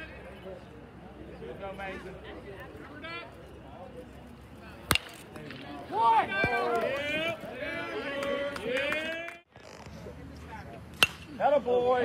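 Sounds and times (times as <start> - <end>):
spectators shouting and cheering: 5.3 - 9.4.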